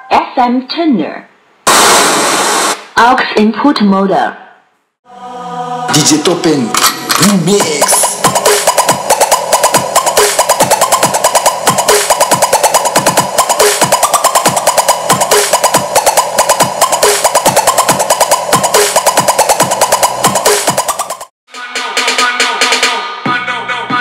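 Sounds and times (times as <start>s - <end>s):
electronic dance music: 1.7s - 2.9s, 5.9s - 24.0s.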